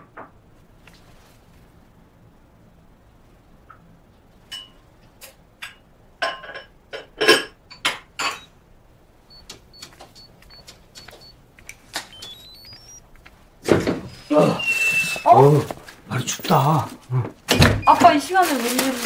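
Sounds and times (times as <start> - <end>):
rustling: 0.5 - 2.0, 18.0 - 19.0
keypad beeps: 8.2 - 8.5, 9.3 - 13.3
voices: 9.4 - 13.5, 14.1 - 19.0
rising run of unlock tones: 12.1 - 13.0.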